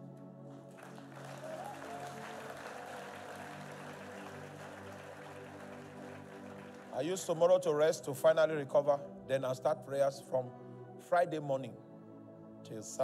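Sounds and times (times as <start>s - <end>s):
soft keyboard pad chords: 0.0s - 13.0s
congregation applauding: 0.5s - 7.9s.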